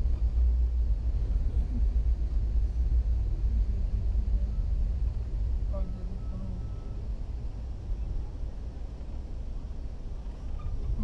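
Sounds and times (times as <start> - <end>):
train carriage rumble: 0.0 - 11.0.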